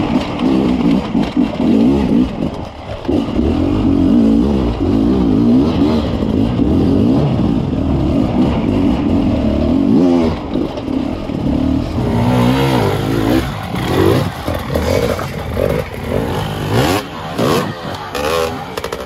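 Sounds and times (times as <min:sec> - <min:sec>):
two-stroke motorcycle engine revving: 0:00.0 - 0:19.0.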